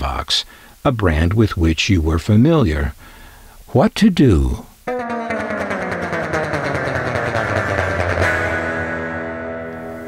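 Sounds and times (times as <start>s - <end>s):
guitar music with sustained chords: 4.9s - 10.0s.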